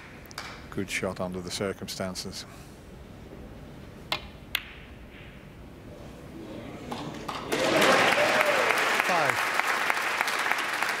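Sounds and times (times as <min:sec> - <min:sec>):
ball striking table with ring: 0:04.1 - 0:05.5.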